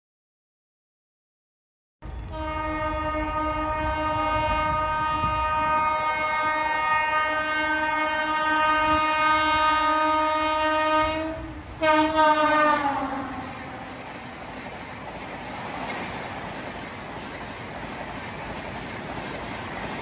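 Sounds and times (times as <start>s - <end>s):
train rumble: 2.0s - 20.0s
locomotive horn blast: 2.3s - 14.0s.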